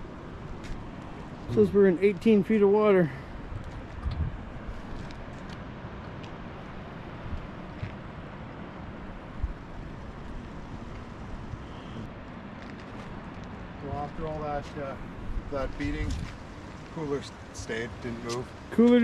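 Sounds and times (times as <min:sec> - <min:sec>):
boat engine rumble: 0:00.0 - 0:19.0.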